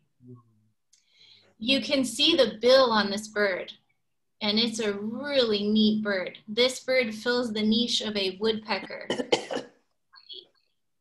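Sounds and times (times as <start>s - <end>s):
woman coughing: 8.7s - 9.8s.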